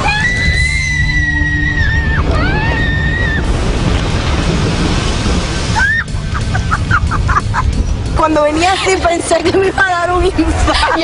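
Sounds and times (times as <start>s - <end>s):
woman screaming: 0.0s - 3.5s, 5.8s - 6.1s
rush of spraying water: 3.1s - 9.4s.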